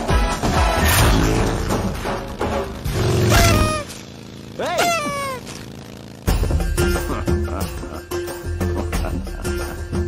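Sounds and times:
film soundtrack music with bass beat: 0:06.3 - 0:10.0.

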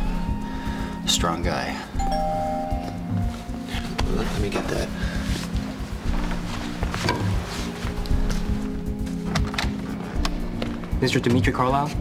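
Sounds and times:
soft background music: 0:00.0 - 0:12.0
two-note doorbell chime: 0:02.0 - 0:03.6.

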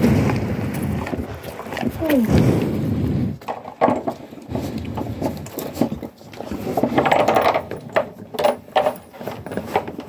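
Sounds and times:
cow snuffling and breathing: 0:00.0 - 0:10.0.

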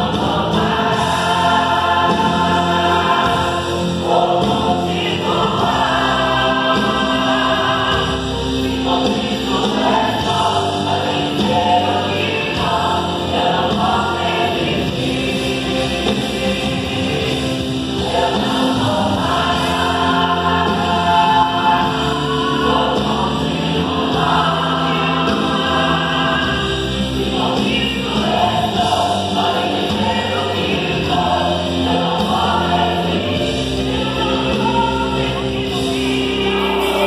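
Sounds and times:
choir singing gospel song: 0:00.0 - 0:37.0.

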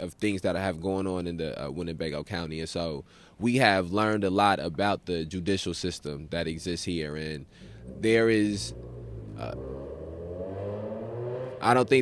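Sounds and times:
steady low hum: 0:07.4 - 0:10.5
faint engine drone: 0:07.5 - 0:12.0.

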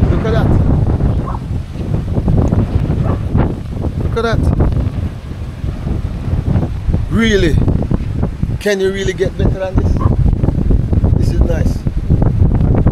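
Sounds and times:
wind buffeting microphone: 0:00.0 - 0:12.9.

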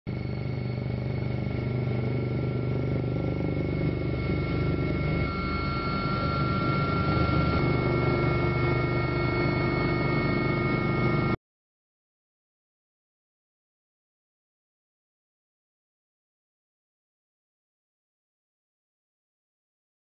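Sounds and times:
helicopter rotor and turbine drone: 0:00.1 - 0:11.4
high whining tones: 0:00.1 - 0:11.4.

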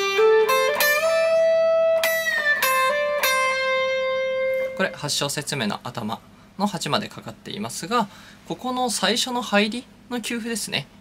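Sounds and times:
electric guitar lead phrase: 0:00.0 - 0:05.1.

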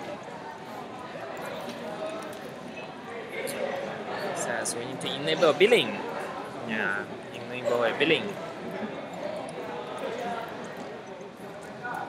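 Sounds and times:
murmur of background voices: 0:00.0 - 0:12.0.

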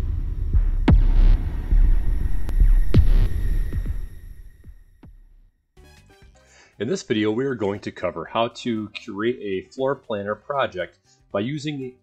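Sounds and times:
sharp hits: 0:00.0 - 0:05.2
deep throbbing bass pulses: 0:00.0 - 0:05.3.

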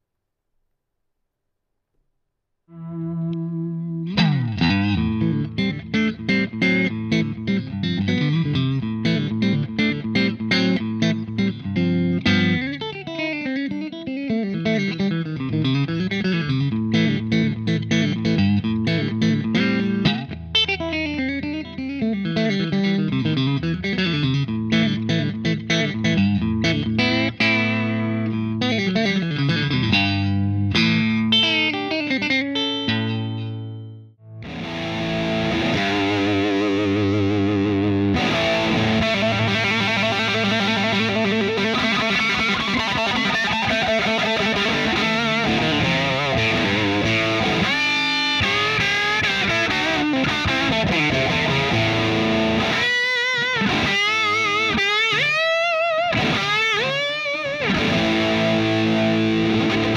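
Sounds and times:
distorted electric guitar: 0:02.7 - 0:59.9
electric guitar with reverb: 0:02.7 - 0:59.9.

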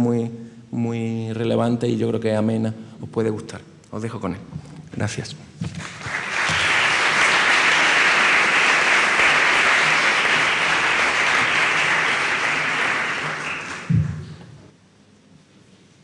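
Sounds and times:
audience applauding: 0:05.8 - 0:14.5
low knock: 0:13.9 - 0:14.6.

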